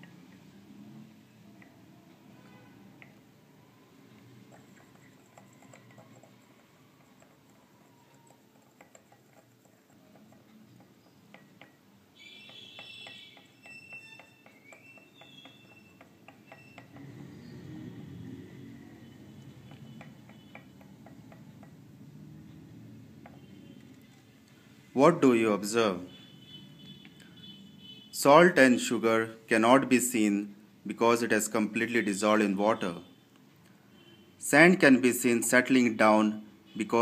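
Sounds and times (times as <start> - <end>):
stick ticking against glass: 4.2 - 17.1, 18.9 - 23.8.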